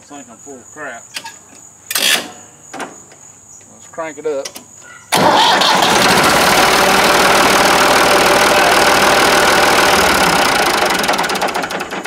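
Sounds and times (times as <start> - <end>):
diesel tractor engine running: 5.2 - 12.0.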